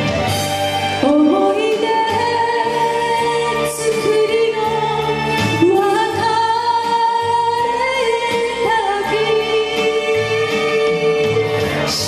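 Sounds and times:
instrumental accompaniment: 0.0s - 12.0s
woman singing into microphone: 0.9s - 12.0s.

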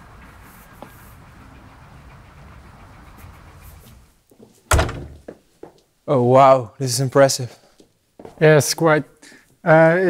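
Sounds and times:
outdoor background noise: 0.0s - 10.0s
door shutting thud: 4.7s - 5.3s.

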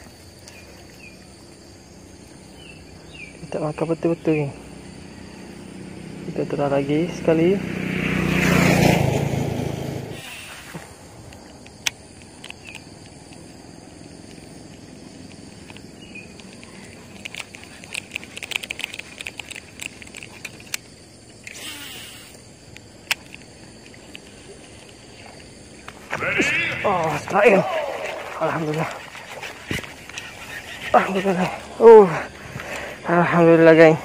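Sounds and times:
motor vehicle passing close: 4.5s - 10.5s
sharp clicks and ticks: 11.3s - 13.4s, 14.2s - 21.8s, 22.7s - 25.0s.

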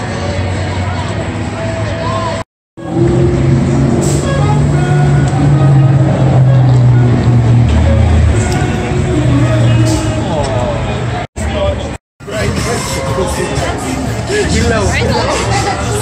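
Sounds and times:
crowd chatter: 0.0s - 2.4s, 4.3s - 16.0s
traffic: 0.0s - 16.0s.

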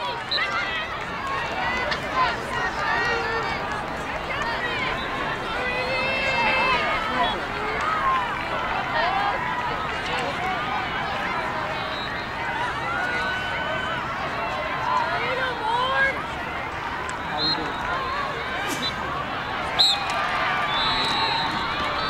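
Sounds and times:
women and girls shouting: 0.0s - 9.7s.

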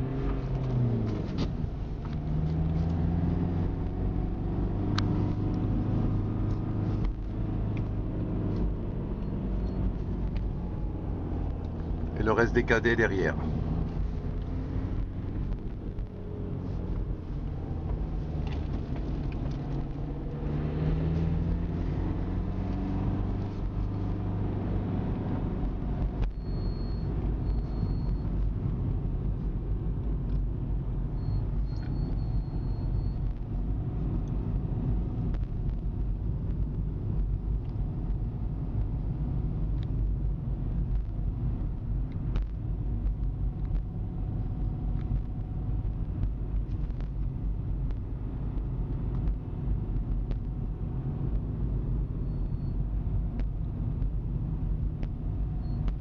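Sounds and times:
vehicle engine and road rumble: 0.0s - 56.0s.

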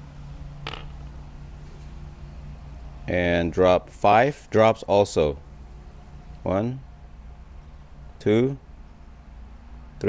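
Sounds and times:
low machine hum: 0.0s - 10.0s.

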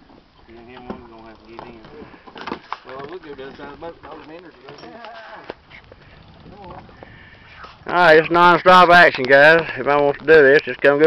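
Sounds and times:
people talking: 7.9s - 11.0s.

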